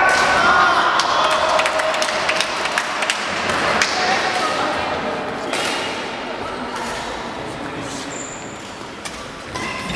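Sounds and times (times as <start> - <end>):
rackets hitting shuttlecocks: 3.4 - 6.1.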